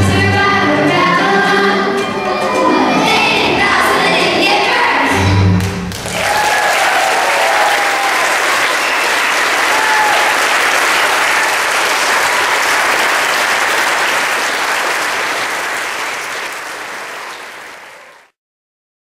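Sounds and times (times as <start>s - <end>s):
audience applauding: 5.8s - 18.4s.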